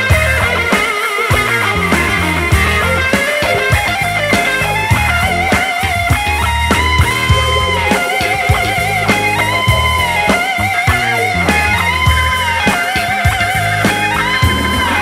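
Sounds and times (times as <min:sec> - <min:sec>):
bass and drums: 0:00.0 - 0:15.0
electric guitar lead notes: 0:00.0 - 0:15.0.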